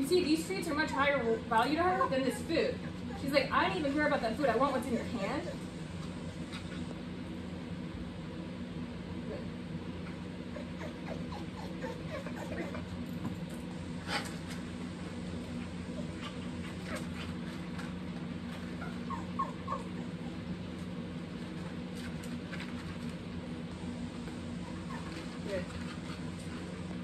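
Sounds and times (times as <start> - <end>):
steady low hum: 0.0 - 27.0.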